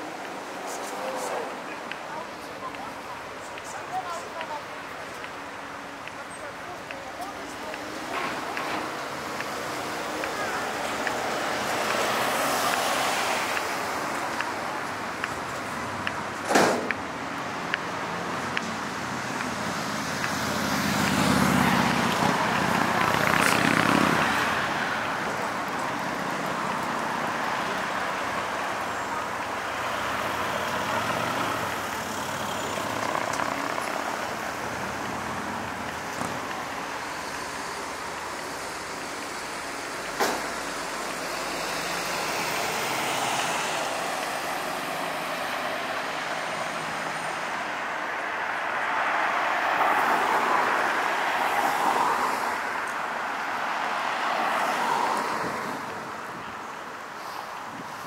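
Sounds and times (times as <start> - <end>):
passing cars hum: 0.0 - 58.0
vehicle passing loudly: 19.0 - 27.9.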